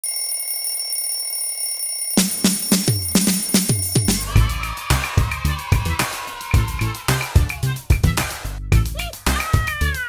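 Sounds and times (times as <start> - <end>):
alarm clock bell ringing: 0.0 - 4.3.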